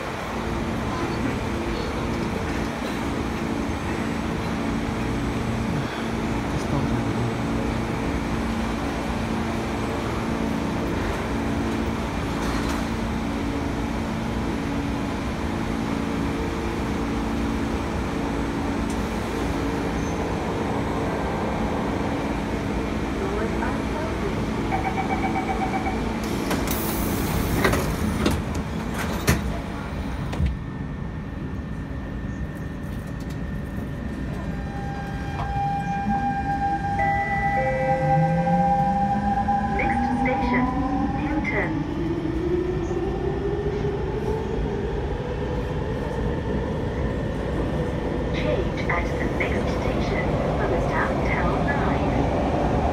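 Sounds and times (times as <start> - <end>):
train equipment hum: 0.0 - 52.9
train doors closing: 9.7 - 13.6, 23.3 - 30.7, 32.4 - 40.6.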